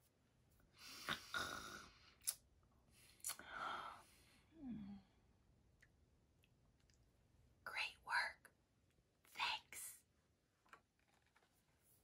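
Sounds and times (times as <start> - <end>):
woman whispering: 7.6 - 8.5, 9.3 - 10.1.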